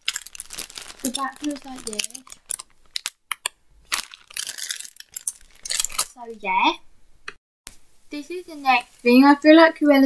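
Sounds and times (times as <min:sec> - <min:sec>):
plastic packaging crinkling: 0:00.0 - 0:03.2, 0:03.9 - 0:06.4.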